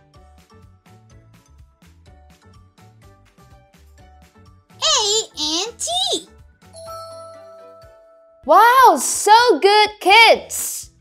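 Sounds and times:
soft children's music: 0:00.0 - 0:11.0
high-pitched voice calling out: 0:04.8 - 0:06.3, 0:08.5 - 0:10.9.

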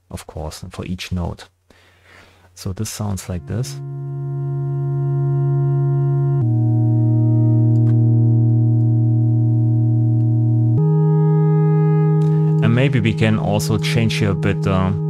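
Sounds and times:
synthesizer drone chords: 0:03.2 - 0:15.0.

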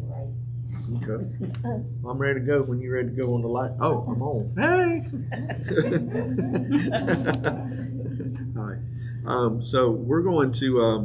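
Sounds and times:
steady low hum: 0:00.0 - 0:11.0
people laughing: 0:03.9 - 0:08.6.

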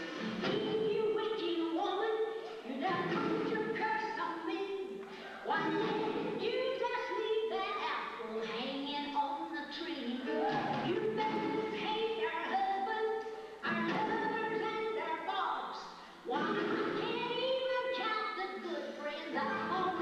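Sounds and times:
woman singing: 0:00.2 - 0:20.0.

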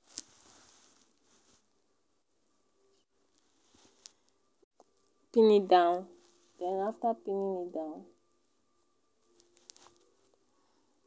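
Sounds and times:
fabric and pins handled: 0:00.0 - 0:01.8, 0:03.2 - 0:05.2, 0:06.1 - 0:07.5, 0:08.8 - 0:10.8.

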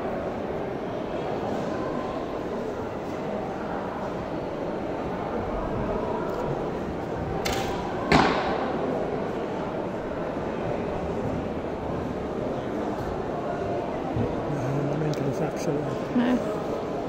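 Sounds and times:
arrow striking target: 0:07.4 - 0:08.7.

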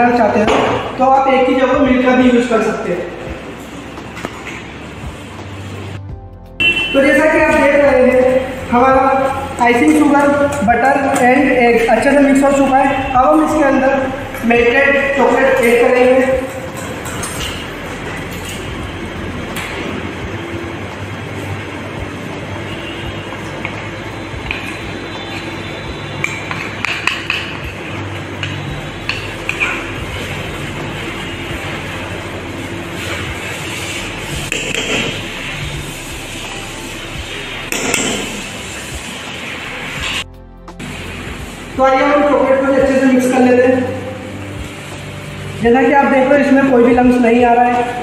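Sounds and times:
background music: 0:00.0 - 0:48.0.

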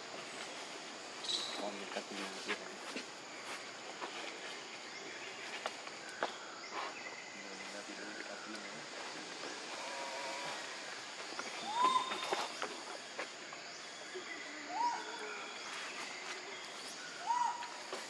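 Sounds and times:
forest background hiss: 0:00.0 - 0:18.0
animal calls: 0:11.6 - 0:12.7.

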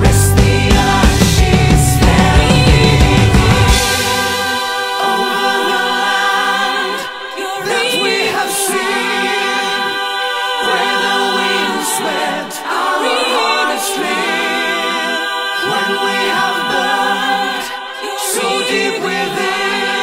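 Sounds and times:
choir-like vocals holding chords: 0:00.0 - 0:20.0.

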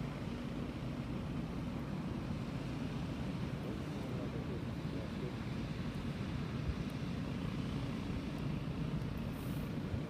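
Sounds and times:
ship diesel engine drone: 0:00.0 - 0:10.0.

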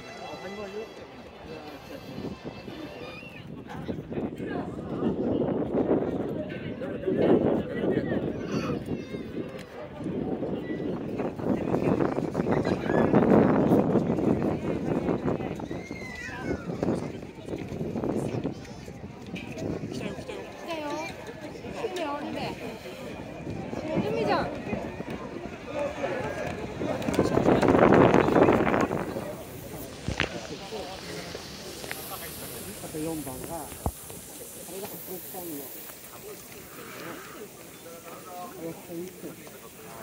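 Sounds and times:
crowd voices and shouts: 0:00.0 - 0:40.0
steady high hiss: 0:27.3 - 0:40.0.

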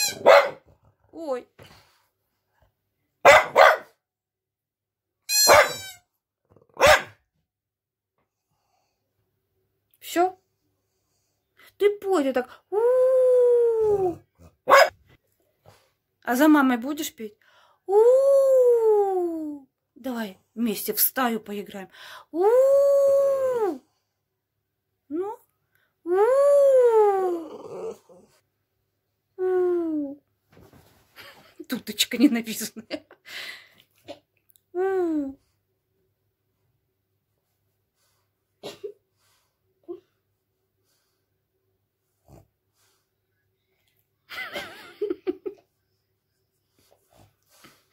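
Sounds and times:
dog barking: 0:00.0 - 0:00.7, 0:03.2 - 0:04.0, 0:05.4 - 0:05.9, 0:06.8 - 0:07.2, 0:14.6 - 0:15.0
dog whining: 0:13.7 - 0:14.9, 0:26.2 - 0:28.4.

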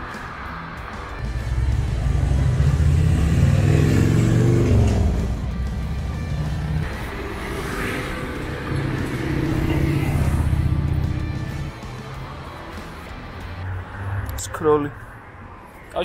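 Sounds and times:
background music: 0:00.0 - 0:15.8
vehicle driving past: 0:00.2 - 0:15.8.

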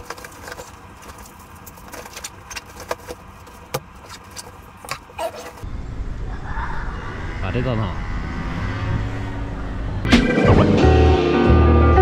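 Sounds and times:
low outdoor rumble: 0:00.0 - 0:10.8.

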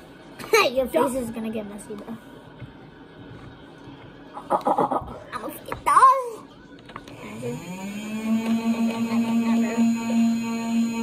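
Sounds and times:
person humming: 0:07.2 - 0:11.0.

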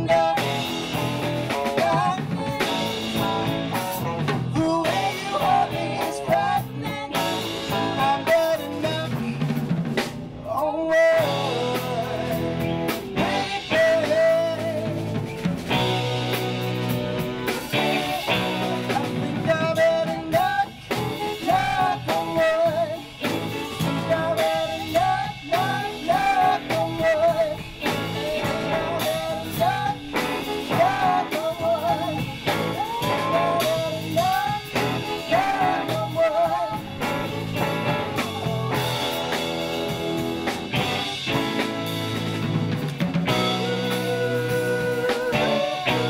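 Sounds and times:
drum kit: 0:00.0 - 0:46.0
electric guitars: 0:00.0 - 0:46.0
saxophone section: 0:11.2 - 0:46.0.

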